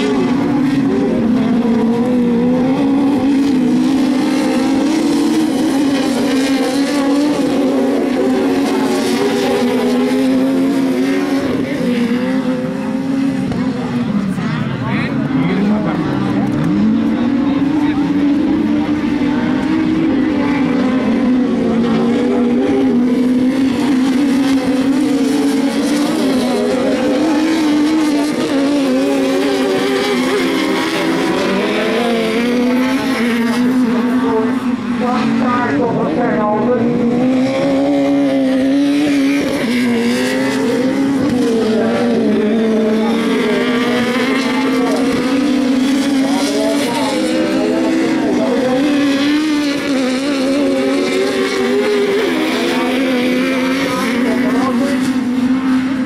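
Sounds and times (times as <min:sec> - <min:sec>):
race car engines at high revs: 0:00.0 - 0:56.0.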